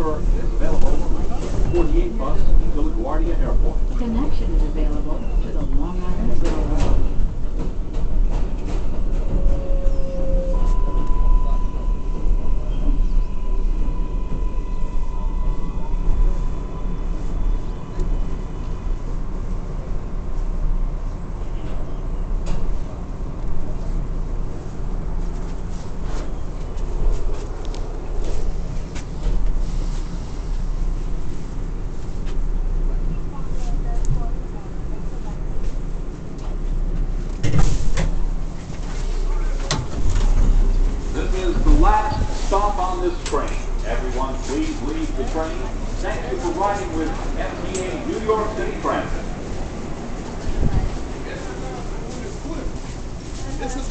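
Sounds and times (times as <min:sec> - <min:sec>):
train clatter: 0:00.0 - 0:11.2, 0:30.8 - 0:53.9
subway wheels rumbling on rails: 0:00.0 - 0:53.9
rail clicks: 0:03.5 - 0:11.2, 0:36.3 - 0:53.1.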